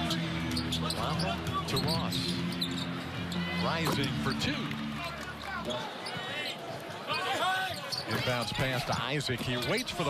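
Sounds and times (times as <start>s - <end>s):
basketball game crowd: 0.0s - 10.0s.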